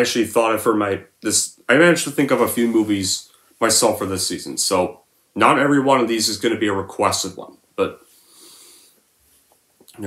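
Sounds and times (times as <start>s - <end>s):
man speaking: 0.0s - 8.1s
man breathing in: 8.1s - 9.0s.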